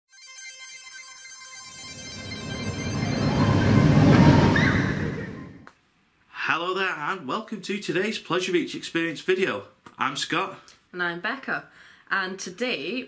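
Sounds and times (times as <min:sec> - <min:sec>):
bell-like ringing tones: 0:00.1 - 0:05.6
whoosh: 0:01.7 - 0:05.7.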